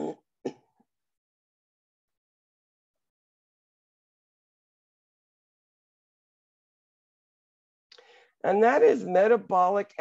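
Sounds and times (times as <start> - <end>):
woman clearing her throat: 0.0 - 0.7.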